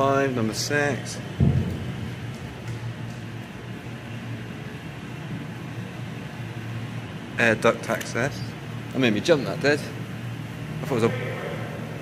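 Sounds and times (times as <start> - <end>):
heavy thump: 1.4 - 2.5.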